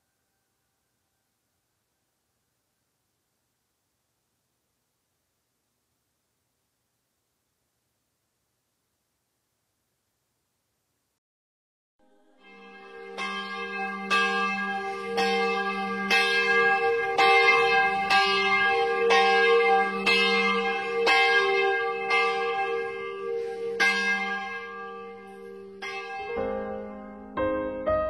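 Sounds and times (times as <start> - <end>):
church bell tolling: 12.1 - 27.8.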